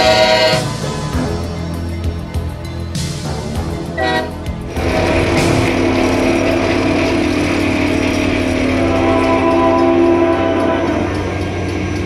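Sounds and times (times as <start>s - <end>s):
locomotive air horn: 0.0s - 1.1s, 3.9s - 11.7s
rapid rattling: 0.0s - 12.0s.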